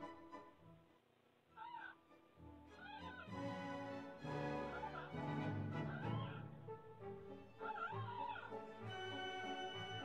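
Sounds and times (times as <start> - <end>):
background music: 0.0 - 10.0
fox cubs whimpering: 4.6 - 5.2, 5.8 - 6.5, 7.6 - 9.7.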